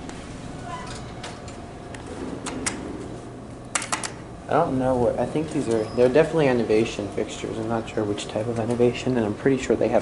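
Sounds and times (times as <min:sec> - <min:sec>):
indoor building hum: 0:00.0 - 0:10.0.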